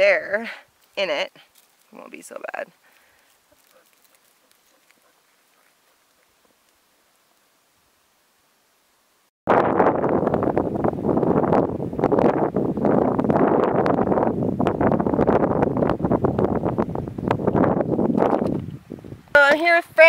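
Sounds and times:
wind buffeting microphone: 9.5s - 20.0s.

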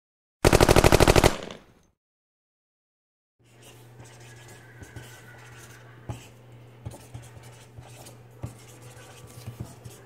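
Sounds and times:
machine gun burst: 0.4s - 1.6s.

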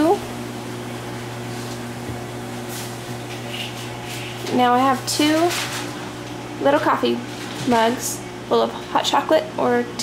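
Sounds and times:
steady low electrical hum: 0.0s - 10.0s.

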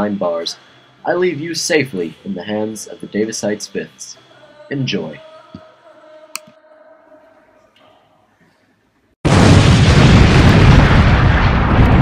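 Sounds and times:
explosion with heavy rumble: 9.3s - 12.0s.

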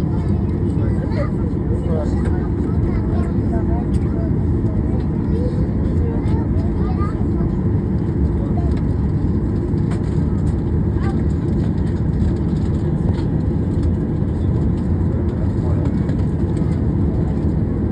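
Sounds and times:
airliner cabin rumble: 0.0s - 17.9s
faint passenger voices: 0.0s - 17.9s.

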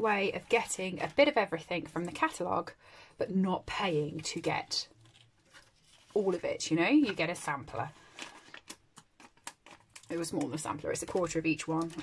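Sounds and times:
card rustling and tapping: 4.1s - 12.0s.

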